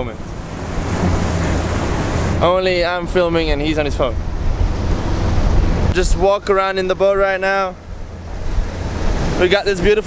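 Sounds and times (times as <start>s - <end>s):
water washing along hull: 0.0s - 2.9s, 7.8s - 10.0s
outboard motors rumbling: 0.0s - 10.0s.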